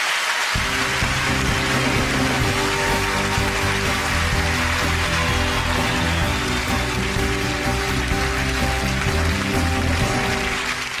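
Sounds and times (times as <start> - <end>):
audience applause: 0.0 - 11.0
band music playing: 0.6 - 11.0.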